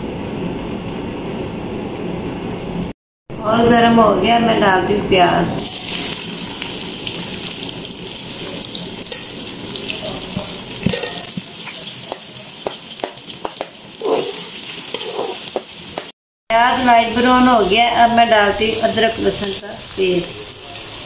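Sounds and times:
onions sizzling in hot oil: 5.6s - 16.1s, 16.9s - 21.0s
metal spoon scraping a pot: 10.9s - 11.4s, 14.0s - 15.4s.

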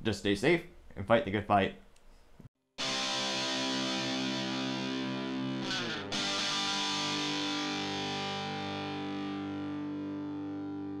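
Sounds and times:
distorted electric guitar chords: 2.8s - 11.0s.

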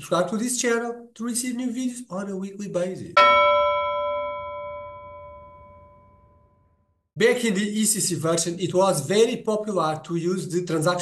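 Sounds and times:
bell chime ringing: 3.2s - 6.6s.

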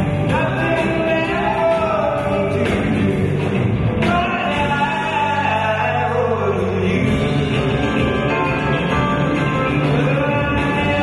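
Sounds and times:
live band playing: 0.0s - 11.0s
men singing in harmony: 4.1s - 7.4s.

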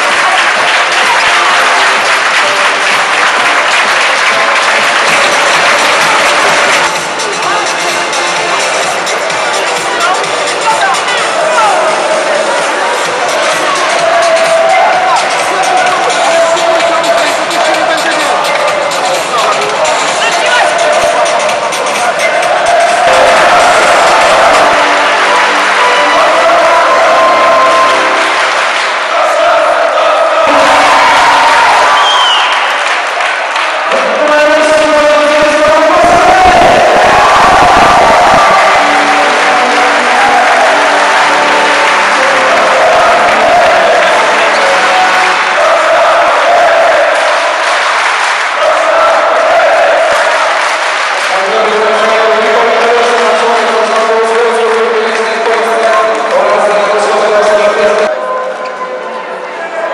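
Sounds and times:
people clapping: 0.0s - 58.9s
crowd cheering: 0.0s - 59.9s.

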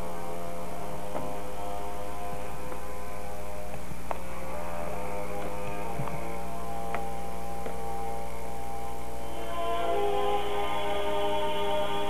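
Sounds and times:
held musical tones: 0.0s - 12.0s
low electrical hum: 0.0s - 12.0s.

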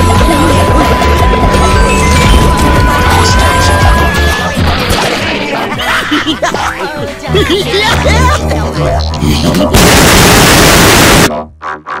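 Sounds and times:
loud static noise burst: 9.8s - 11.3s.

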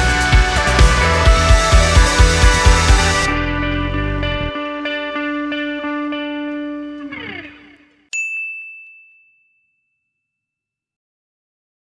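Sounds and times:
guitar music: 0.0s - 8.1s.

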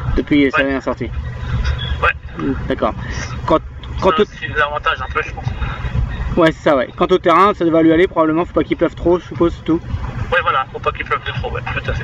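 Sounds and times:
steady low rumble: 0.0s - 12.0s
voices talking: 0.0s - 12.0s.

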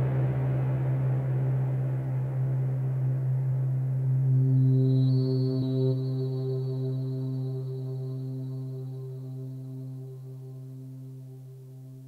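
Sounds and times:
low synthesizer drone: 0.0s - 11.8s.

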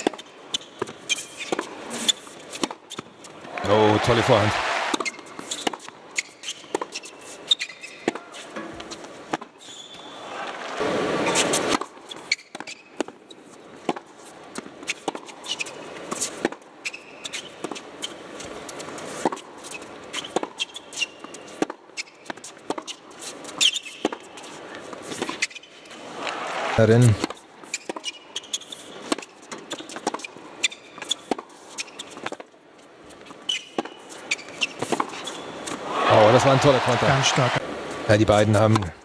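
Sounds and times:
shoe squeaks on court: 0.0s - 3.1s, 5.0s - 8.6s, 9.6s - 10.2s, 11.2s - 13.4s, 14.9s - 18.2s, 19.3s - 22.2s, 22.8s - 24.2s, 27.6s - 32.4s, 33.4s - 35.7s
crowd reaction: 3.5s - 5.0s, 26.2s - 27.1s, 35.8s - 37.6s.

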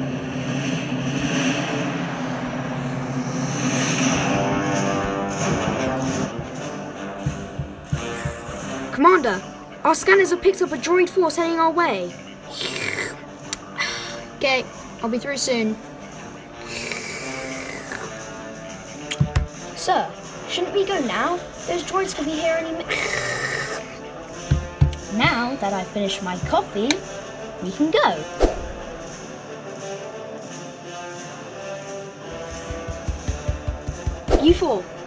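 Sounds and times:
rushing engine-like noise: 0.0s - 8.9s
coffee slurp: 16.6s - 18.1s.

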